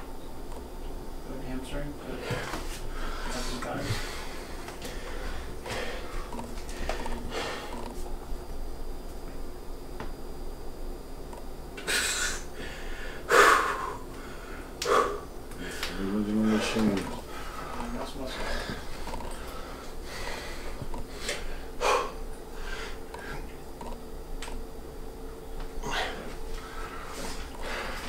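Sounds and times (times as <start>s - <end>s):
man breathing hard: 2.2s - 7.8s, 11.8s - 23.5s, 25.8s - 28.0s
man grunting: 25.8s - 26.3s.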